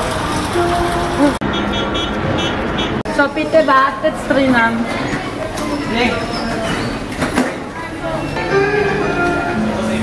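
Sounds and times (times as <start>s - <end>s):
crowd voices: 2.2s - 10.0s
background music: 8.4s - 10.0s.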